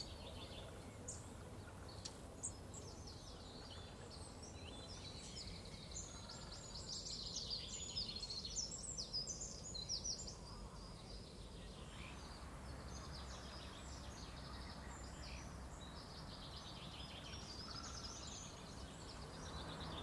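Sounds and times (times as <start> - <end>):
faint low outdoor rumble: 0.0 - 20.0
small birds twittering: 0.0 - 20.0.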